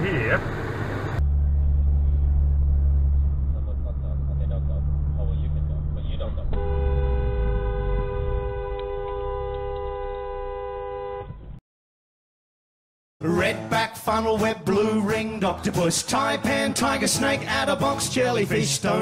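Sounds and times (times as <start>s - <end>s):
car engine and road rumble: 0.0s - 11.6s
car horn held: 6.5s - 11.6s.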